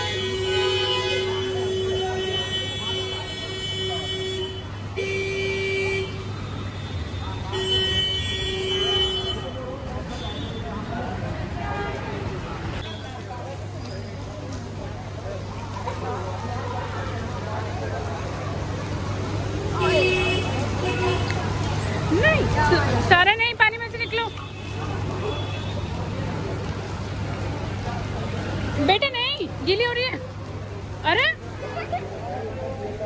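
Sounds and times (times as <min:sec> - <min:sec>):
road traffic rumble: 0:00.0 - 0:33.0.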